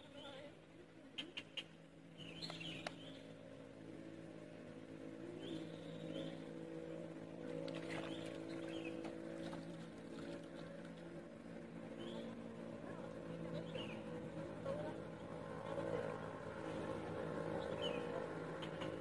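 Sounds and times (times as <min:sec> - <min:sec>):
motor humming: 0:01.7 - 0:19.0.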